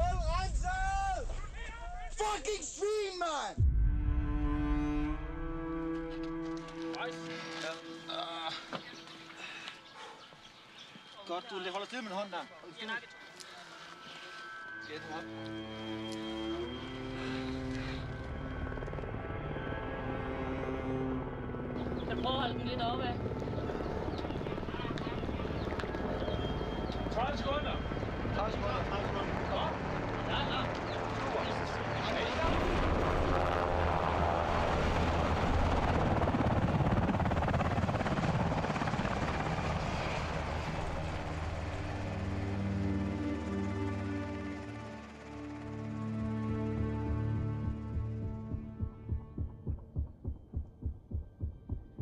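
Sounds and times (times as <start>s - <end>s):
music: 3.5s - 9.8s, 12.8s - 33.6s, 35.8s - 52.0s
helicopter rotor blades chopping: 16.9s - 20.4s, 21.2s - 52.0s.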